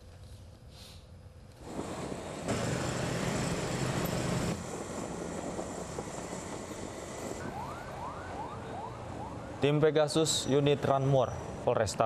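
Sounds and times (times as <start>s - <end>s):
motorcycle engines at speed: 1.6s - 7.6s
road and wind noise: 1.6s - 12.0s
police siren whooping: 7.0s - 11.4s.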